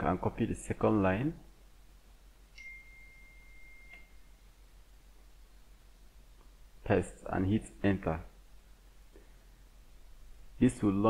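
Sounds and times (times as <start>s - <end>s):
high-pitched pure tone: 2.5s - 4.4s.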